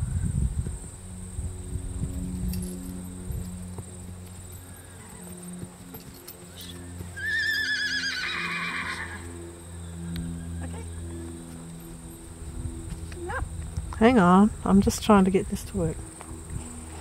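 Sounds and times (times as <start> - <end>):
horse whinnying: 6.6 - 9.4.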